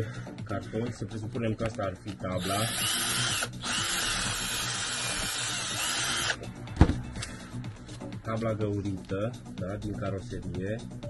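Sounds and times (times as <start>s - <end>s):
cordless drill drilling cardboard: 2.4s - 6.4s.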